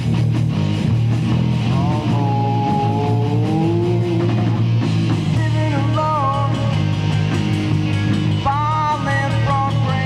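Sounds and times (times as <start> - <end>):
heavy metal band playing: 0.0 - 10.0.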